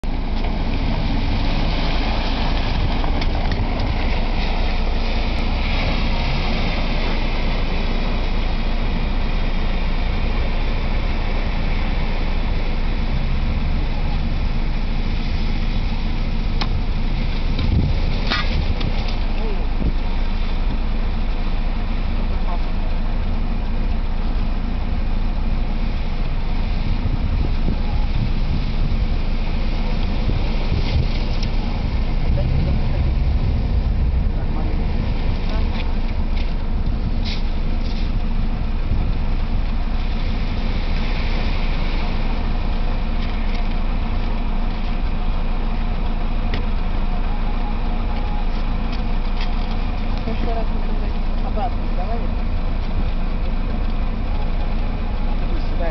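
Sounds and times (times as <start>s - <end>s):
car driving on gravel: 0.0s - 55.9s.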